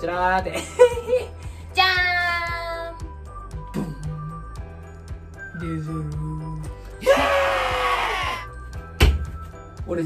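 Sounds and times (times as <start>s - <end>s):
background music: 0.0s - 10.0s
loud scream-like cry: 7.0s - 8.5s.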